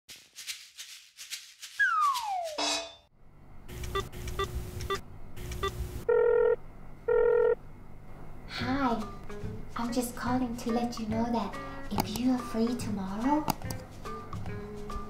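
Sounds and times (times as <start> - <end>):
phone ringing tones: 5.6 - 7.6.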